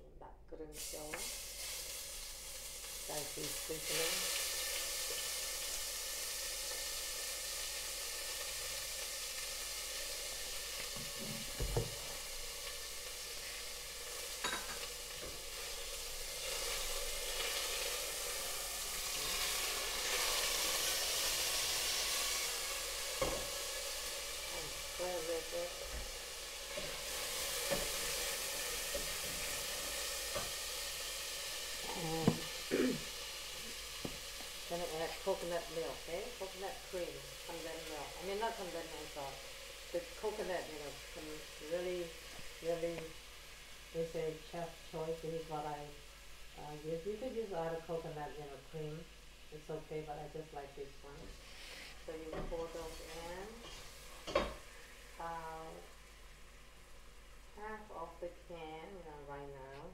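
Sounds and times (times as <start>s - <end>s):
paste sizzling in hot oil: 0.7s - 59.6s.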